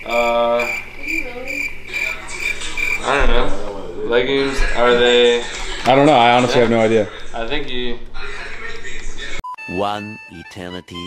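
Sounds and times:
man humming: 0:00.0 - 0:00.8.

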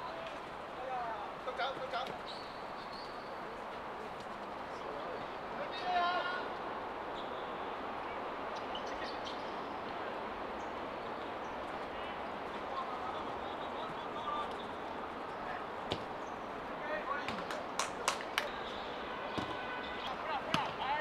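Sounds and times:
players shouting: 0:05.6 - 0:06.7, 0:11.9 - 0:21.0.

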